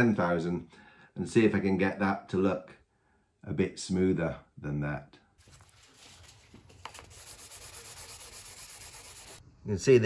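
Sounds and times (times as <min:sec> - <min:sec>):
sandpaper rubbing back and forth: 0:06.9 - 0:09.4.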